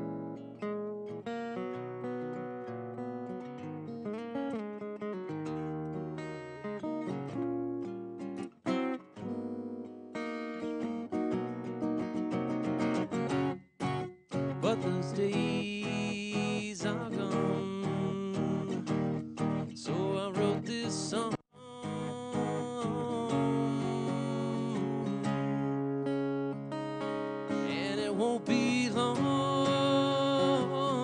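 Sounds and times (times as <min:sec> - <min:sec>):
acoustic guitar strumming: 0:00.0 - 0:31.0
man singing: 0:14.5 - 0:25.7, 0:27.5 - 0:31.0.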